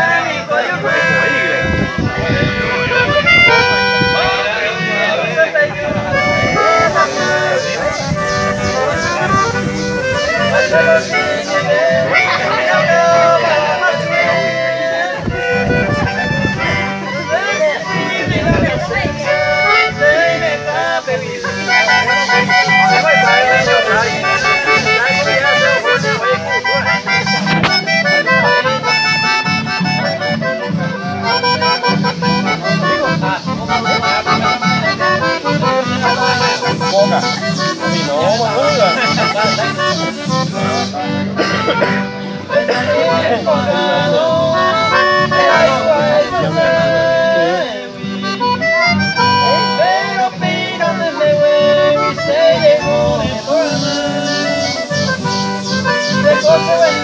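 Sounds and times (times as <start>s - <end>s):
accordion melody: 0.0s - 57.0s
strummed acoustic guitars: 0.0s - 57.0s.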